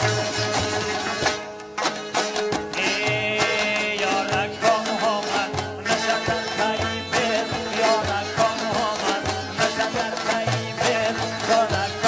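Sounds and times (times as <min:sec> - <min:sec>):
long-necked lute plucking melody: 0:00.0 - 0:12.0.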